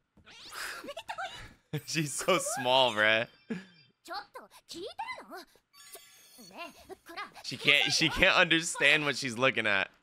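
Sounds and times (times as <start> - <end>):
high-pitched girl's voice exclaiming: 0.8 - 1.5, 4.0 - 5.6, 6.5 - 9.0
high tinkle: 5.8 - 7.1.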